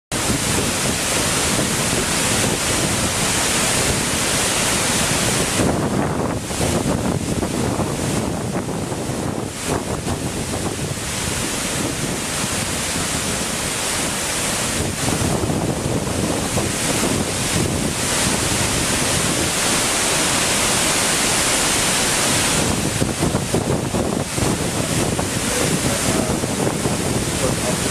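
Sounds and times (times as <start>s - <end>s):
churning stream: 0.1s - 27.9s
waterfall rushing: 0.1s - 27.9s.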